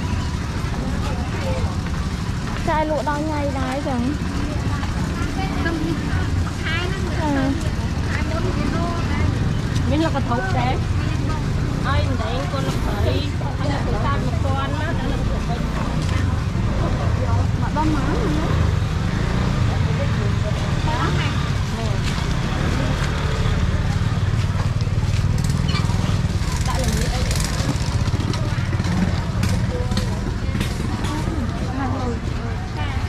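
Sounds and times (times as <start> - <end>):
people talking: 0.0 - 33.0.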